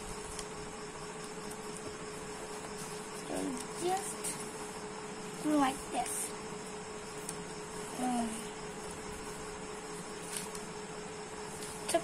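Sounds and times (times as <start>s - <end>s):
steady hum: 0.0s - 12.0s
paper being folded: 10.2s - 10.7s.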